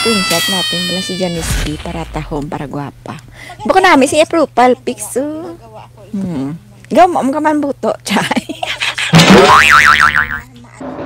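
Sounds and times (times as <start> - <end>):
cartoon boing sound effect: 9.2 - 10.5.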